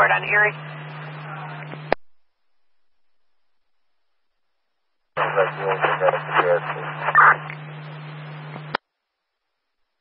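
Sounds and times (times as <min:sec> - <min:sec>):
radio hiss: 0:00.0 - 0:02.0, 0:05.2 - 0:08.8
unclear radio speech: 0:00.0 - 0:02.0, 0:05.2 - 0:08.7
radio squelch click: 0:05.2 - 0:07.7, 0:08.3 - 0:08.8.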